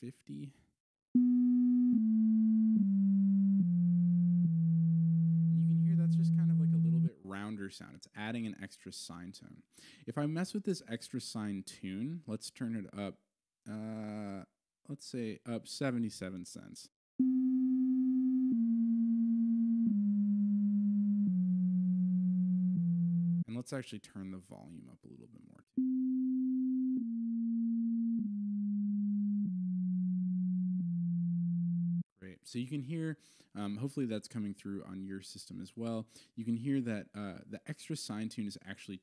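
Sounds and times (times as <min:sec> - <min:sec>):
synthesizer low held notes: 0:01.2 - 0:07.2, 0:17.2 - 0:23.5, 0:25.8 - 0:32.1.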